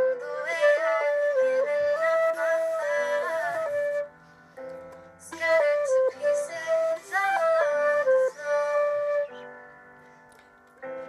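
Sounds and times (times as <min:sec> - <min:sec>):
flute playing slow melody: 0:00.0 - 0:04.7, 0:05.4 - 0:10.2.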